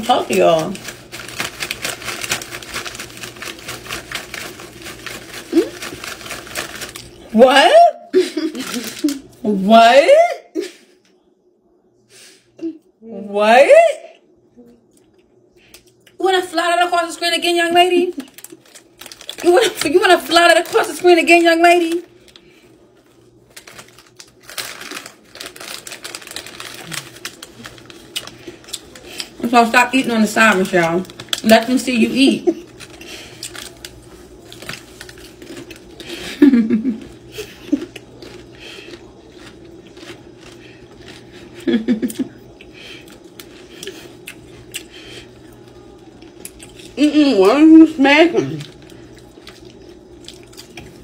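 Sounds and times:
plastic chip bag crinkling: 0:00.0 - 0:07.4, 0:08.4 - 0:09.4, 0:16.5 - 0:47.0, 0:47.9 - 0:51.0.

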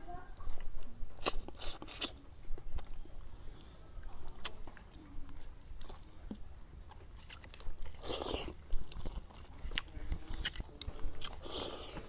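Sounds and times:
person chewing food: 0:00.4 - 0:12.0
mouth clicks and lip smacks: 0:00.6 - 0:03.0.

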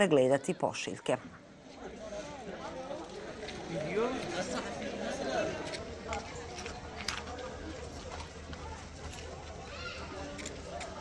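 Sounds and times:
distant crowd voices: 0:00.0 - 0:11.0.

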